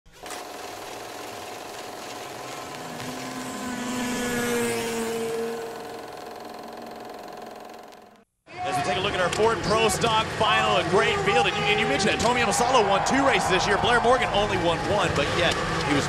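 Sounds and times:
film projector whirring and clattering: 0.1 - 3.8, 5.3 - 8.2.

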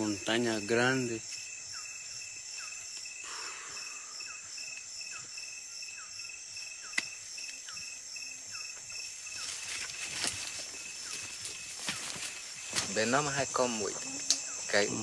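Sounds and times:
insects whining: 0.0 - 15.0.

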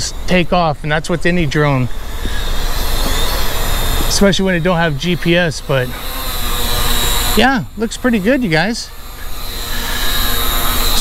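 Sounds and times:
loud steady rushing noise: 0.0 - 11.0.

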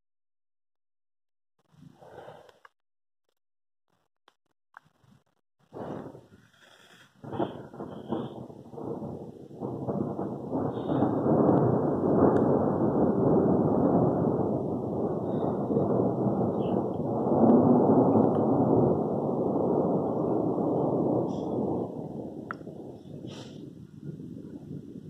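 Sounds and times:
thunder rumbling: 5.7 - 25.0.

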